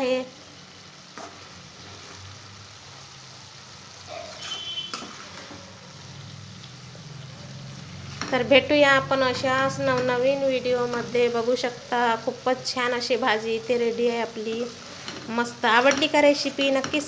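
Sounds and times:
pan sizzling: 0.0s - 17.0s.

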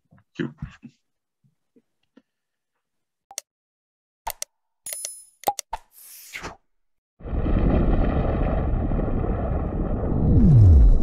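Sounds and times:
mouse-style clicks: 4.3s - 5.9s.

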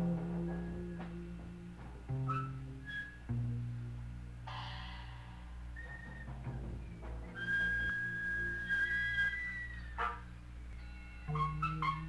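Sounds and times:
jazz band playing: 0.0s - 3.0s, 5.7s - 10.4s, 11.0s - 12.0s
low bass line: 0.0s - 7.4s
high whistle-like note: 4.5s - 10.3s.

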